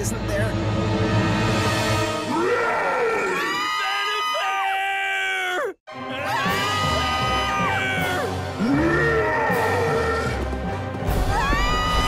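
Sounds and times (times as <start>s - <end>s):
music: 0.0s - 3.0s, 5.9s - 12.0s
cartoon voices screaming: 2.3s - 10.3s.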